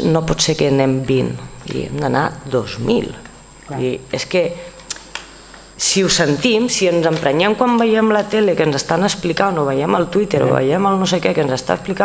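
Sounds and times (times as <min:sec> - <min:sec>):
woman speaking into a microphone: 0:00.0 - 0:04.8, 0:05.8 - 0:12.0.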